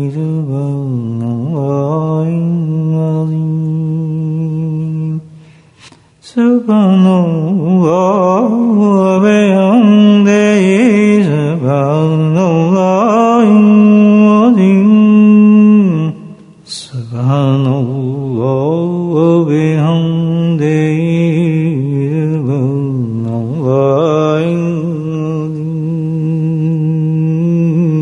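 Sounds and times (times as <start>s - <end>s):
man chanting: 0.0s - 5.4s, 6.2s - 28.0s.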